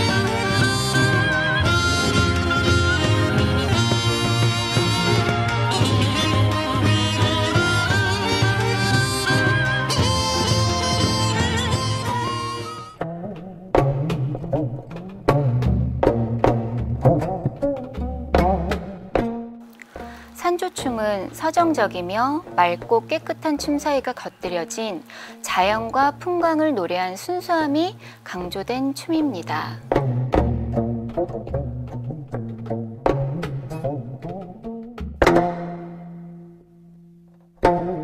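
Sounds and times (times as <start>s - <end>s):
plucked string instrument notes: 0.0s - 38.0s.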